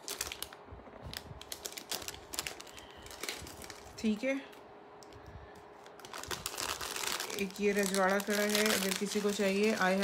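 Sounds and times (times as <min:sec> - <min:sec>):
plastic bag crinkling: 0:00.0 - 0:04.3, 0:05.6 - 0:10.0
woman speaking: 0:03.9 - 0:04.6, 0:07.3 - 0:10.0.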